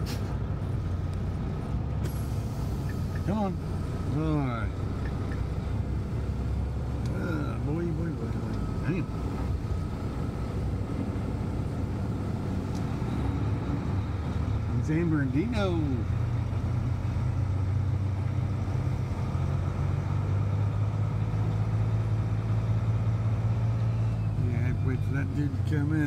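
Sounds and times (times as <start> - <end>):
diesel truck engine rumbling: 0.0 - 26.0.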